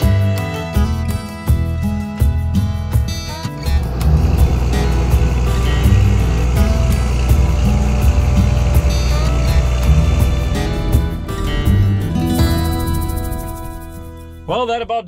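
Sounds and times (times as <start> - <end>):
background music: 0.0 - 15.0
tractor diesel engine: 3.2 - 14.6.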